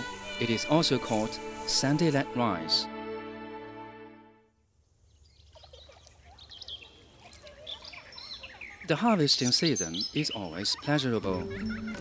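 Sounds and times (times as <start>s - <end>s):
birds chirping and calling: 5.2s - 12.0s.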